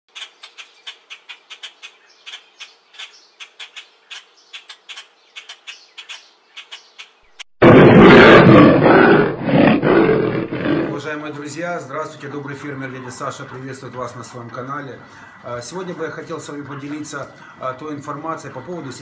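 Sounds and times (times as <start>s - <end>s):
loud harsh cry: 7.6s - 11.0s.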